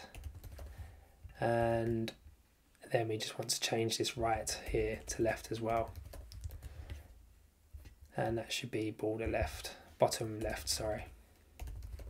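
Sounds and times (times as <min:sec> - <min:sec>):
computer keyboard clicks: 0:05.7 - 0:06.7, 0:11.6 - 0:12.0.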